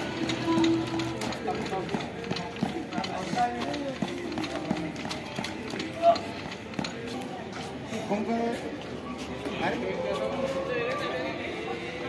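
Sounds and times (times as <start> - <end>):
background music: 0.0 - 12.0
voices: 0.0 - 12.0.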